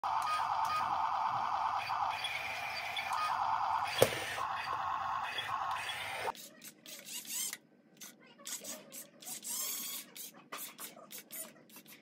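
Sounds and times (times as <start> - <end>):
toy excavator motors whining: 0.0 - 7.6, 8.5 - 10.3.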